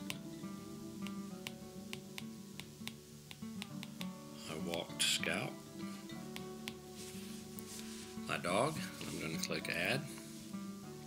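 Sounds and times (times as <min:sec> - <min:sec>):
soft acoustic guitar music: 0:00.0 - 0:11.0
stylus tapping on glass screen: 0:01.0 - 0:04.9, 0:06.3 - 0:06.8.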